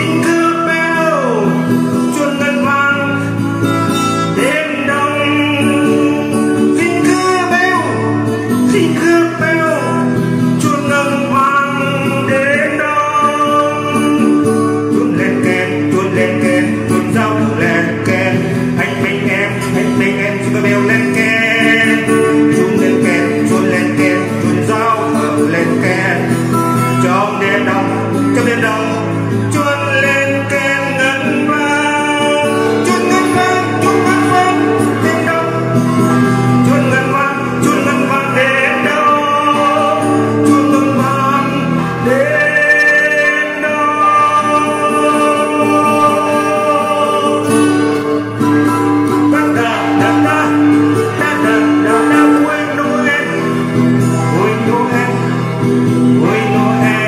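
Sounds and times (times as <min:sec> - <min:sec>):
acoustic guitar: 0:00.0 - 0:57.0
man singing: 0:00.0 - 0:57.0.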